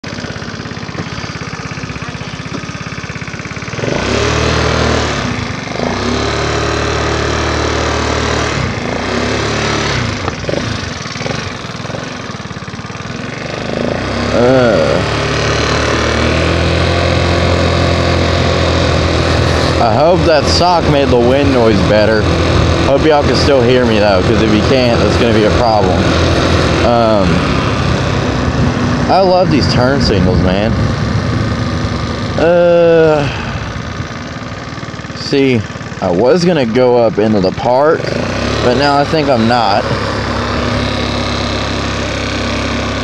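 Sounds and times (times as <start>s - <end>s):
scooter engine idling and revving: 0.0s - 43.0s.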